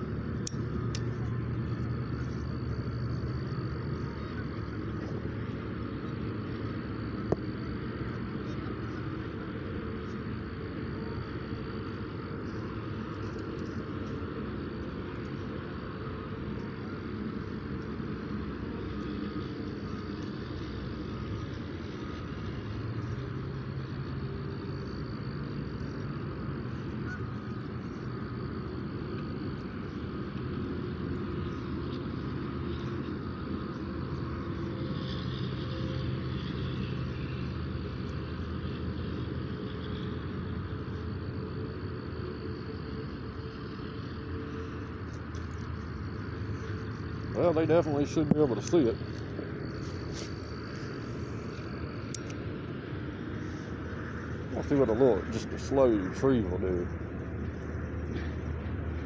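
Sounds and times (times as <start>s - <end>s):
distant road traffic rumble: 0.0s - 59.0s.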